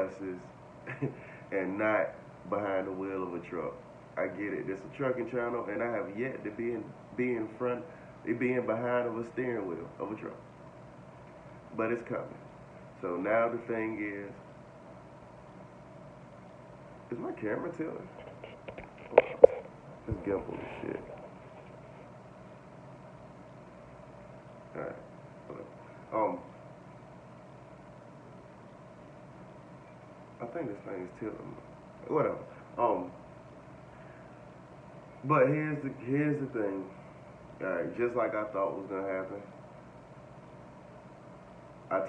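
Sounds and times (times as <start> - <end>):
air-conditioner hum and hiss: 0.0 - 42.0
man talking: 20.1 - 21.2, 24.7 - 26.5, 30.4 - 33.2.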